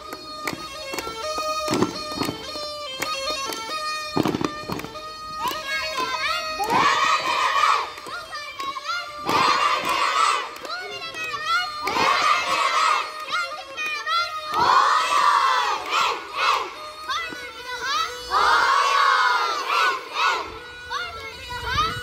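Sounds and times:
bagpipe playing quick tune: 0.0 - 22.0
children shouting together: 5.4 - 22.0.

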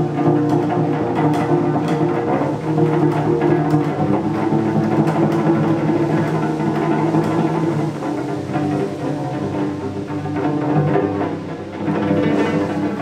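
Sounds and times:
cello strings plucked: 0.0 - 13.0.

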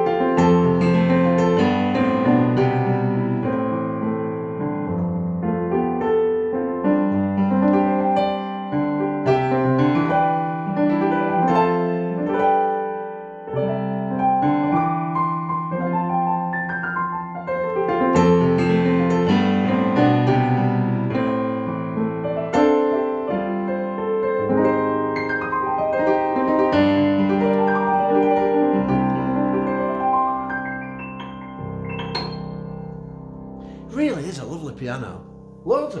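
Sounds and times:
piano chords and melody: 0.0 - 36.0.

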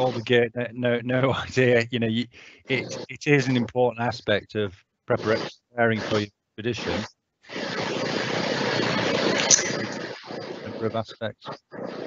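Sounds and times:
distorted voice over video call: 0.0 - 7.1, 8.0 - 12.0.

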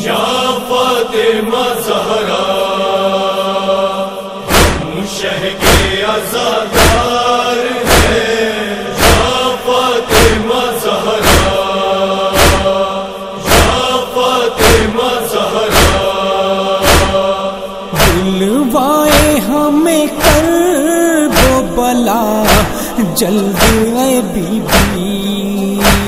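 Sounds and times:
male chorus chanting held tones: 0.0 - 26.0
sharp beat: 22.4 - 22.8, 23.5 - 25.2, 25.8 - 26.0.

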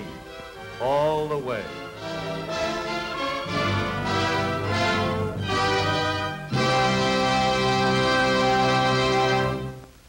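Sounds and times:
orchestral sustained chords: 0.0 - 9.9.

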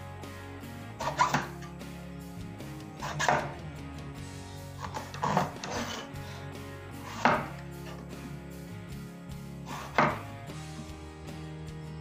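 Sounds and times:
background music: 0.0 - 12.0
knife chop on cutting board: 1.0 - 1.6, 3.0 - 3.6, 7.0 - 7.6, 9.7 - 10.3.

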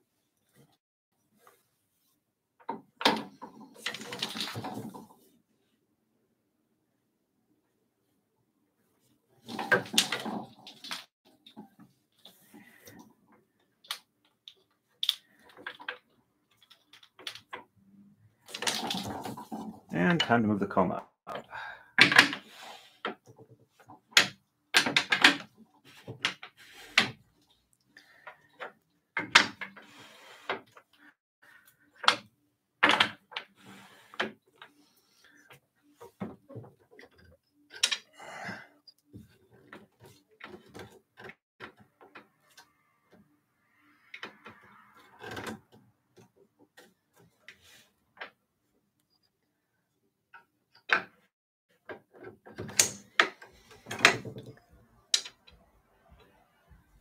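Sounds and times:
wooden bobbins clacking: 2.6 - 5.3, 9.4 - 38.2, 39.1 - 43.2, 50.3 - 56.4.

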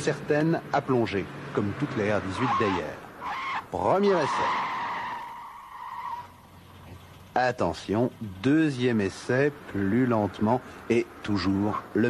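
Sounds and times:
tyres squealing under braking: 1.6 - 7.1, 9.7 - 12.0.

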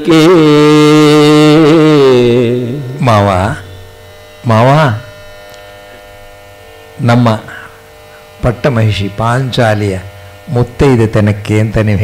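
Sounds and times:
man singing: 0.0 - 3.7
electrical mains hum: 0.0 - 12.0.

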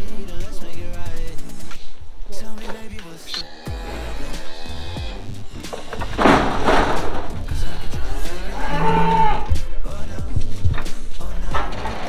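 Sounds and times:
background music with beat: 0.0 - 12.0
cow mooing: 3.4 - 9.6.

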